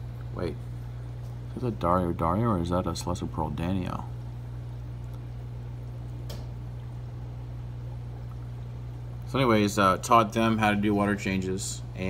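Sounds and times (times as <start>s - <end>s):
aquarium equipment humming: 0.0s - 12.0s.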